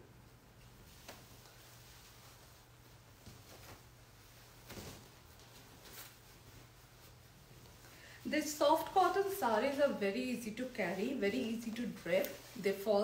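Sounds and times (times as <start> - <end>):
low steady hum: 0.0 - 13.0
soft cloth rustles: 0.3 - 13.0.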